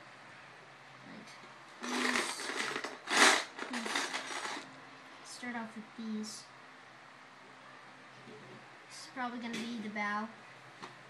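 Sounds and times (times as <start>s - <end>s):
plastic bricks clattering in a bin: 1.8s - 4.6s.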